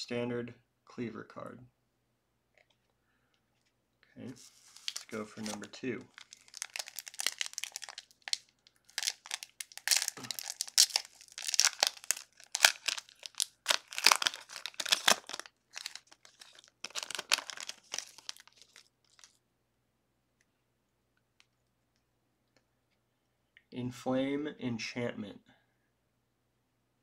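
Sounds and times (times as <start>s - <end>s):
foil wrapper torn and crinkling: 4.7s - 19.4s.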